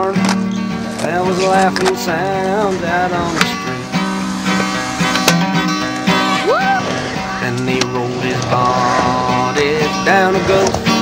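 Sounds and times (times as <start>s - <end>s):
person singing folk song: 0.0s - 4.1s, 6.0s - 11.0s
acoustic guitar strumming: 0.0s - 11.0s.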